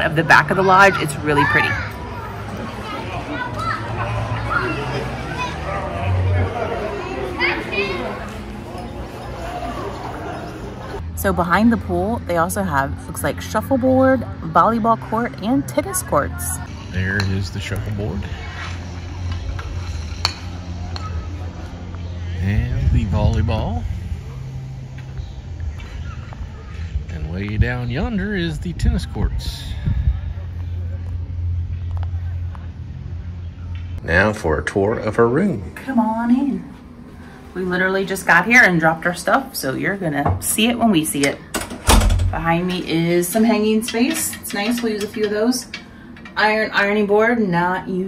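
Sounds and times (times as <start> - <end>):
people chattering: 0.0 - 48.0
children shouting and playing: 0.2 - 11.0, 17.9 - 22.4, 24.2 - 27.1
steady low hum: 8.4 - 48.0
low rumble: 16.6 - 34.0, 41.8 - 43.0.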